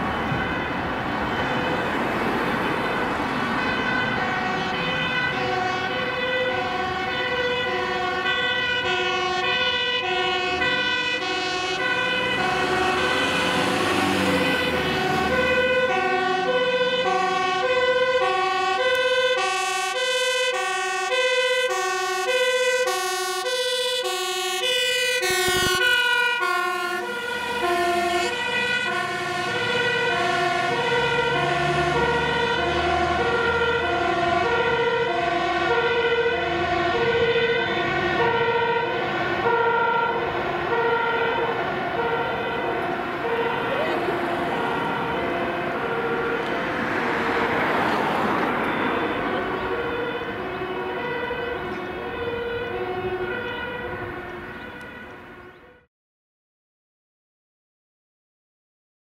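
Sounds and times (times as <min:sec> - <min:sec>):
truck engine and tyre noise: 0:00.0 - 0:55.8
fire engine two-tone siren: 0:00.0 - 0:55.9.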